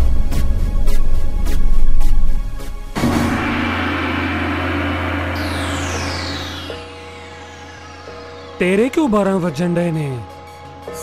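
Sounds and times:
gong-like strike with deep drone: 0:03.0 - 0:09.1.

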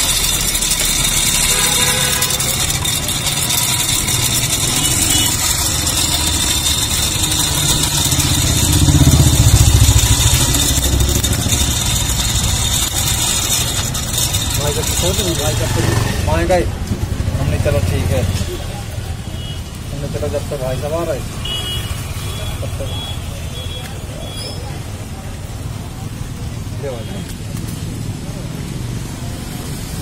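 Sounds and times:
hand-cranked blower whirring: 0:00.0 - 0:18.4.

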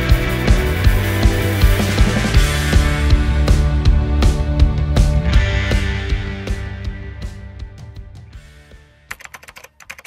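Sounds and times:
background music: 0:00.0 - 0:10.0
rapid keyboard typing clicks: 0:09.1 - 0:10.0.

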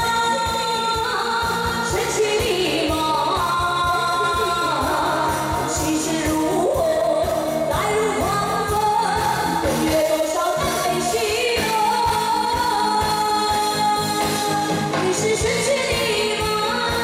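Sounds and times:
pop backing track with drum beat: 0:00.0 - 0:17.0
woman singing into microphone: 0:00.0 - 0:17.0.

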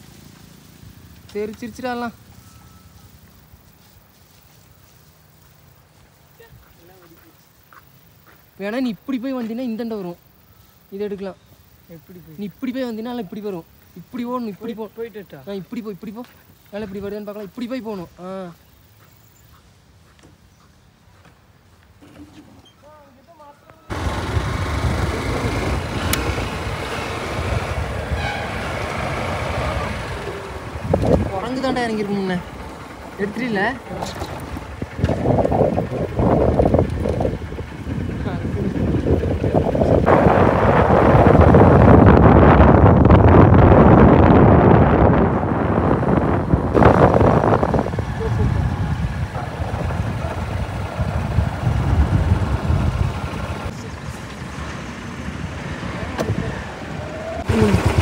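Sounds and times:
motorcycle engine and road noise: 0:00.0 - 0:58.0
vehicle rumble: 0:00.0 - 0:58.0
wind rush over microphone: 0:24.3 - 0:31.5, 0:34.2 - 0:53.7, 0:55.5 - 0:58.0.

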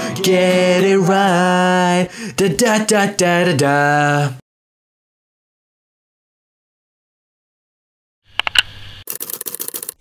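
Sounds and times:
rattle of fast clicks: 0:08.4 - 0:10.0.

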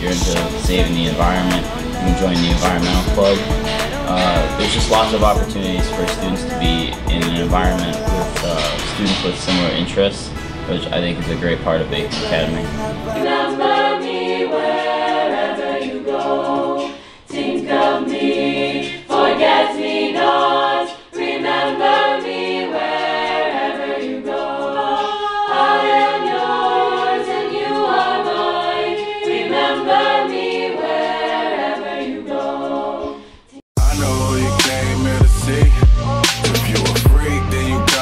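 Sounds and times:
choir singing in harmony: 0:00.0 - 0:38.0.

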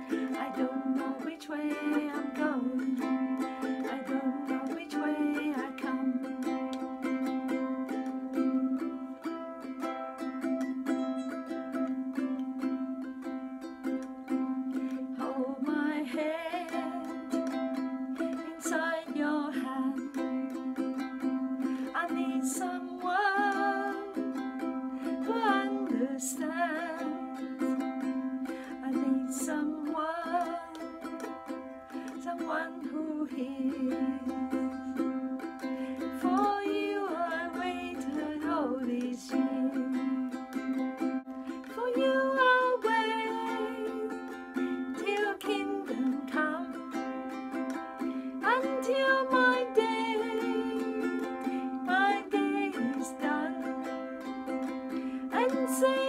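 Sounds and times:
woman singing with vibrato: 0:00.0 - 0:09.4, 0:14.3 - 0:56.0
ukulele strummed chords: 0:00.0 - 0:56.0.

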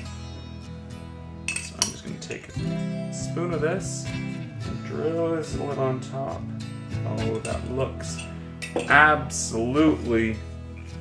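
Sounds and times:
soft guitar music: 0:00.0 - 0:11.0
metal spoon clinking glass jar: 0:01.5 - 0:02.0, 0:07.3 - 0:09.0.

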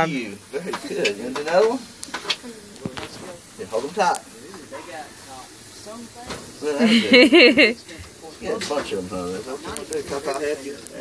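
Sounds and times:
faint voices: 0:00.0 - 0:11.0
gas grill hissing: 0:00.0 - 0:11.0
man speaking: 0:03.6 - 0:05.5, 0:06.6 - 0:07.3, 0:08.3 - 0:11.0.

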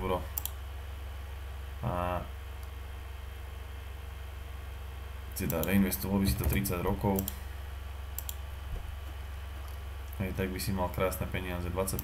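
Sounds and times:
low electrical hum: 0:00.0 - 0:12.0
computer clicks: 0:00.3 - 0:00.6, 0:05.4 - 0:05.8, 0:06.4 - 0:07.4, 0:08.1 - 0:08.4.

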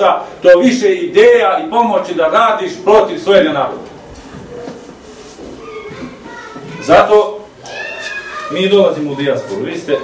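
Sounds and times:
man speaking: 0:00.0 - 0:03.9, 0:08.5 - 0:10.0
child's high voice: 0:05.6 - 0:07.0, 0:07.6 - 0:10.0.

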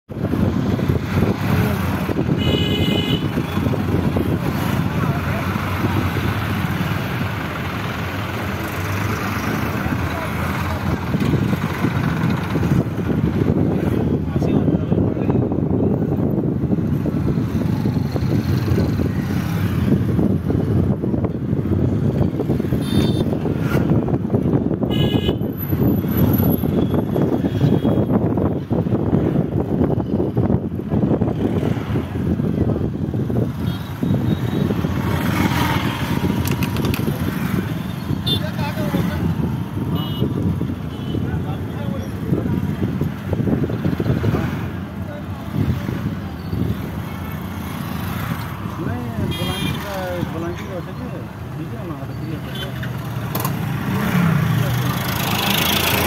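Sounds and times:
loud vehicle rumble: 0:00.1 - 0:56.0
horn toot: 0:02.3 - 0:03.6.

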